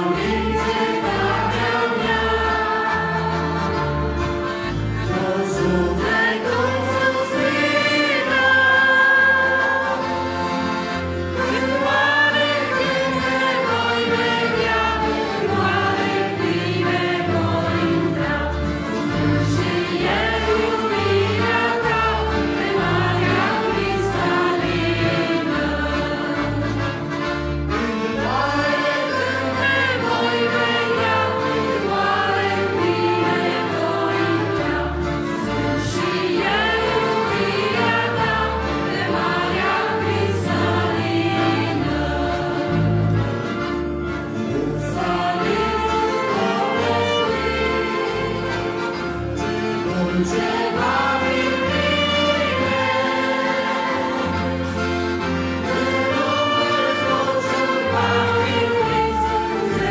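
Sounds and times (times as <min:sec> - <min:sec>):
women singing in harmony: 0:00.0 - 0:26.7, 0:28.2 - 0:43.2, 0:44.5 - 0:49.0, 0:50.0 - 0:54.8, 0:55.6 - 0:59.9
accordion: 0:00.0 - 0:59.9
keyboard with pulsing bass: 0:00.0 - 0:59.9
saxophones: 0:00.0 - 0:59.9.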